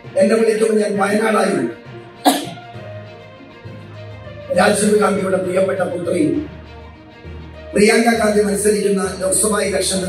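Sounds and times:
faint background music: 0.0s - 10.0s
man coughing: 2.2s - 2.8s.

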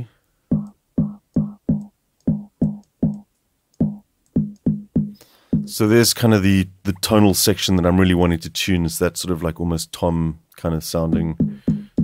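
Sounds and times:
low tom-like sine pops: 0.5s - 3.2s, 3.8s - 5.8s.

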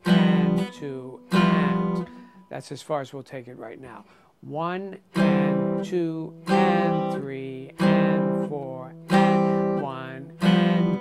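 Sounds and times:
guitar chords strummed: 0.0s - 2.8s, 4.8s - 11.0s.

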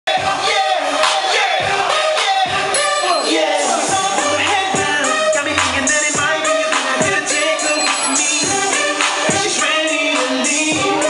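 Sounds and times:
crowd singing and shouting: 0.1s - 11.0s
loud dance music: 0.1s - 11.0s.

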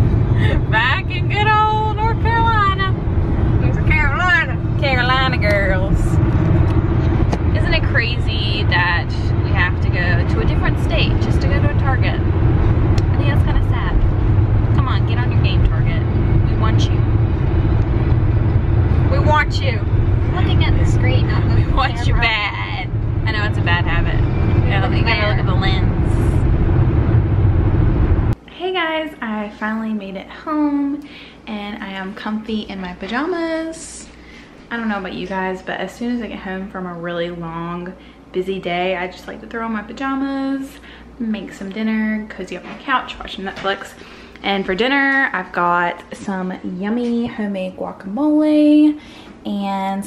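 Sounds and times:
road and engine rumble in car: 0.0s - 28.4s.

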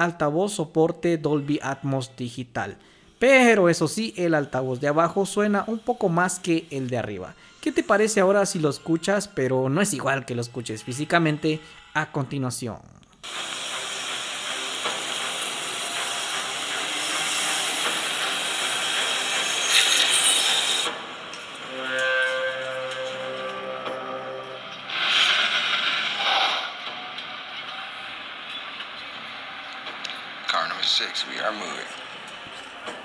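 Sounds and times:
sustained musical tones: 0.8s - 12.5s, 13.2s - 33.0s
high-speed train rushing: 13.2s - 33.0s.

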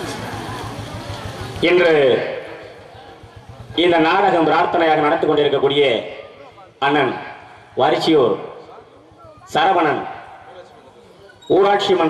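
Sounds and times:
man's voice through loudspeakers: 1.6s - 2.8s, 3.7s - 12.0s.

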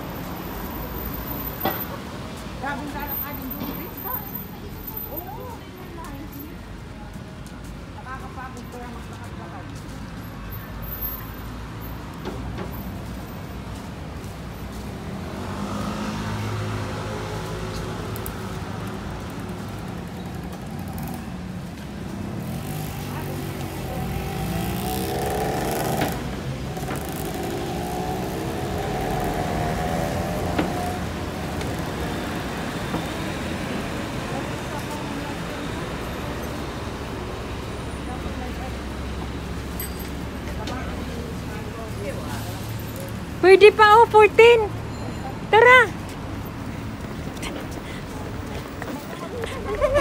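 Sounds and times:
steady traffic din: 0.0s - 50.0s
vehicle engine passing: 15.1s - 19.6s, 22.2s - 50.0s.

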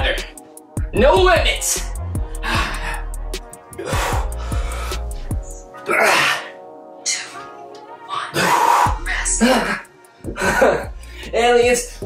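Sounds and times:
background music: 0.0s - 12.0s
man exhaling and grunting: 2.2s - 7.4s, 8.1s - 11.0s.

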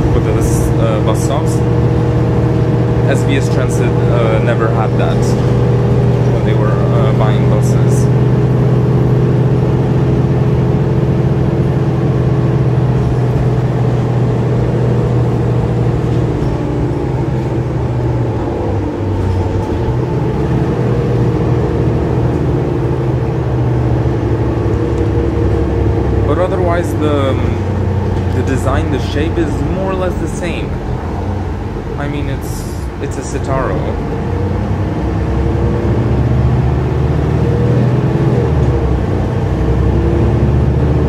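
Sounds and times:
voices: 0.0s - 1.7s, 2.9s - 8.2s, 26.2s - 31.0s, 31.6s - 34.3s
bus diesel engine drone: 0.0s - 41.0s.

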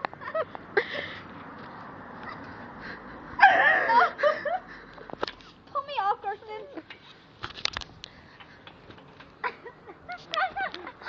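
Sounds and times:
small dog crying: 3.4s - 4.1s.

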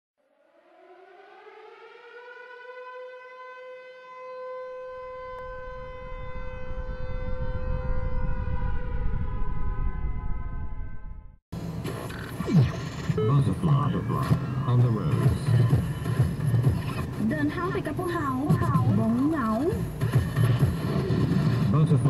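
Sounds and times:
synthesized humming tone: 4.6s - 13.4s
low rumble: 5.4s - 11.4s.

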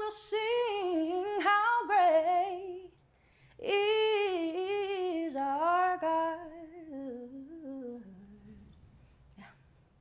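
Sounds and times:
woman singing unaccompanied: 0.0s - 3.0s, 3.6s - 8.7s.

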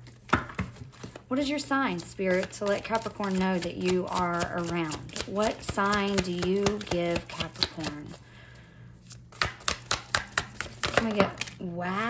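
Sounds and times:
cards being shuffled: 2.3s - 8.2s, 9.1s - 11.6s.

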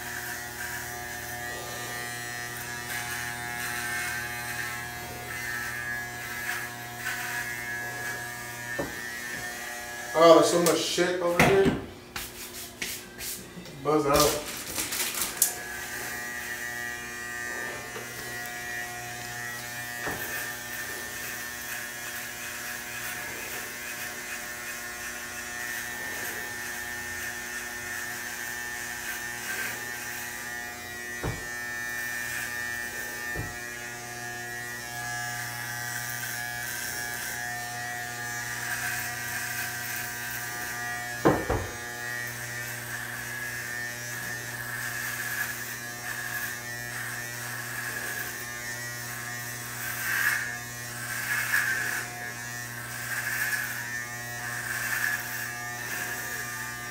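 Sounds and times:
electric hair clippers buzzing: 0.0s - 56.9s.

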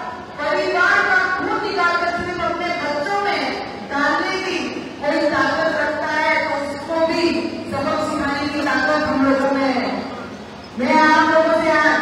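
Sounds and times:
woman's voice over public address: 0.0s - 10.1s, 10.8s - 12.0s.

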